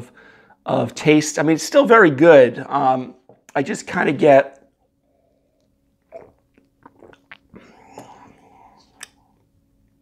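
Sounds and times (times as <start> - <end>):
soft breathing: 5.0 - 5.8, 7.5 - 9.5
man sipping from a glass: 5.1 - 9.5
lip smacks and mouth clicks: 5.6 - 8.2, 8.8 - 9.5.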